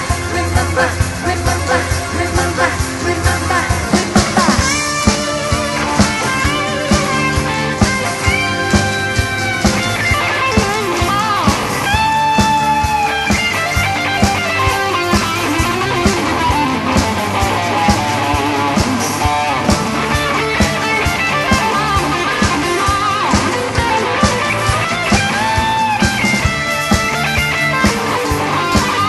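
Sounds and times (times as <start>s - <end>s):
rock band playing: 0.0s - 29.0s.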